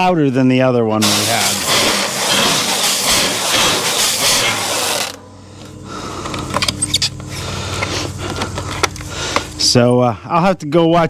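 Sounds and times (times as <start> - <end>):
stretch wrap film pulling off: 1.4 - 5.2.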